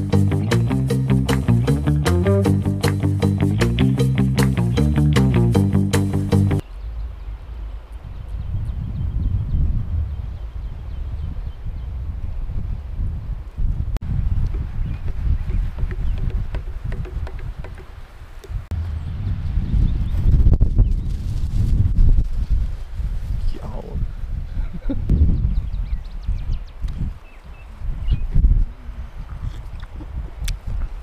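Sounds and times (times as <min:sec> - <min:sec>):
wind buffeting microphone: 0:06.6 - 0:31.0.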